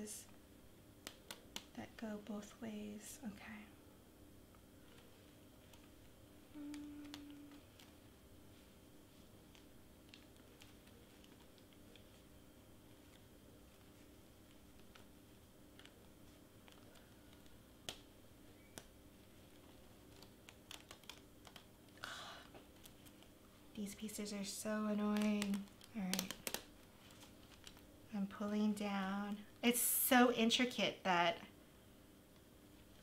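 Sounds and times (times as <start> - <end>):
faint clicks and crackles: 1.0 - 3.8, 4.5 - 29.8
low hum: 1.7 - 20.1
plastic sheet crinkle: 4.8 - 21.7, 22.6 - 28.4.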